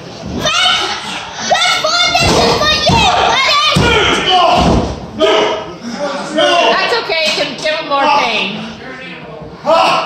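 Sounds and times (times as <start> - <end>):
spectators talking and shouting: 0.2 - 8.7.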